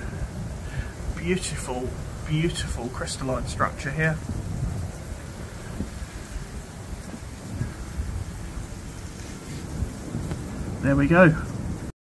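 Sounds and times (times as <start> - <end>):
low rumble: 0.0 - 11.9
steady hiss: 0.0 - 11.9.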